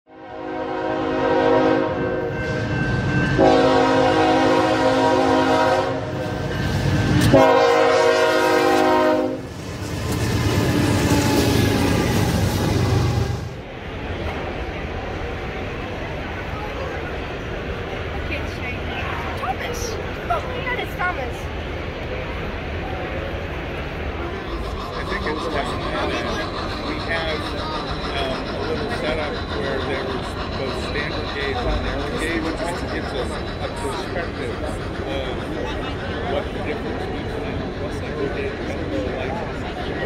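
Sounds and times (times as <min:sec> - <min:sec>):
locomotive air horn blasts: 0:00.1 - 0:02.6, 0:03.3 - 0:06.2, 0:07.2 - 0:09.5
train rumbling on rails: 0:00.1 - 0:40.0
crowded indoor hall chatter: 0:13.6 - 0:40.0.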